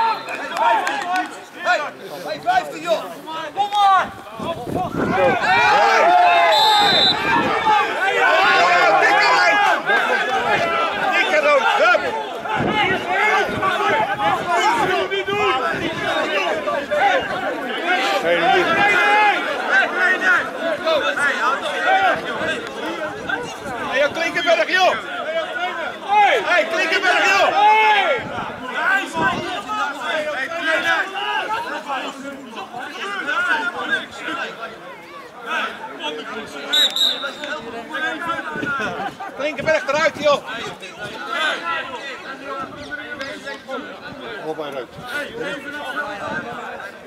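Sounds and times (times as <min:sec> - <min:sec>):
men shouting over one another: 0:00.0 - 0:34.6
men talking: 0:00.0 - 0:47.0
short high whistle: 0:06.5 - 0:07.2, 0:36.7 - 0:37.5.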